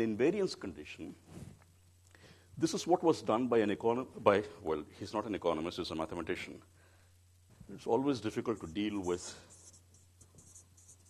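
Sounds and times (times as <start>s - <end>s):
marker pen scratching on paper: 8.4s - 11.0s.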